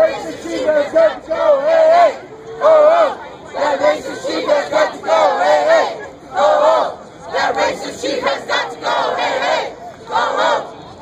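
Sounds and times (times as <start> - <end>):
crowd shouting a chant: 0.0 - 11.0.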